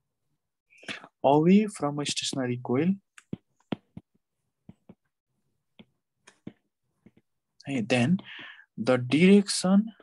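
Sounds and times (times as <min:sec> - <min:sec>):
stylus tapping on glass screen: 0:03.1 - 0:05.1.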